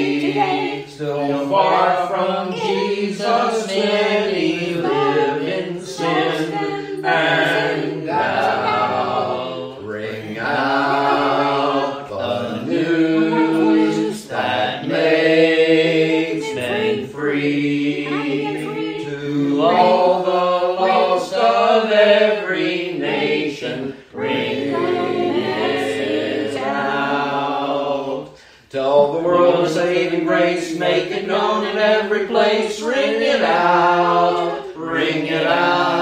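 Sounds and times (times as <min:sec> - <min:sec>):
congregation singing a hymn: 0:00.0 - 0:36.0.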